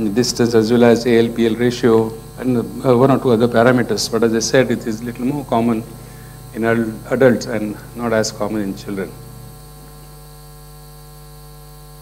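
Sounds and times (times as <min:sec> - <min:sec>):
person speaking: 0:00.0 - 0:09.4
electrical mains hum: 0:00.0 - 0:12.0.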